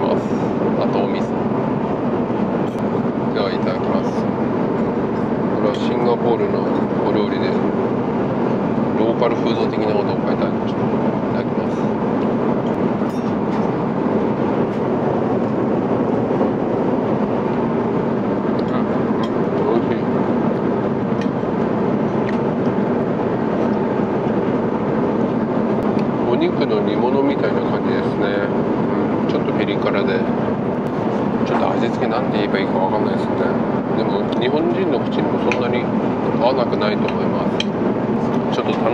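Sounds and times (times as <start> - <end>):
airliner cabin roar: 0.0 - 38.9.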